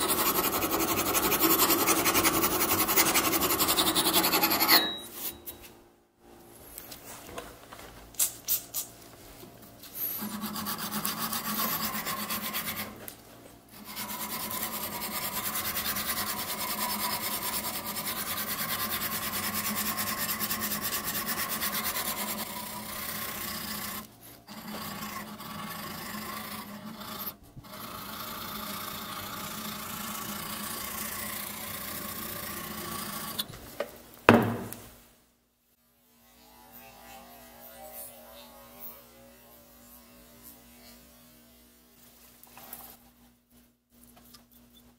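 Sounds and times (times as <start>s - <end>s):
tool rasping a steel blade: 0.0s - 5.6s, 10.1s - 13.0s, 13.7s - 33.5s.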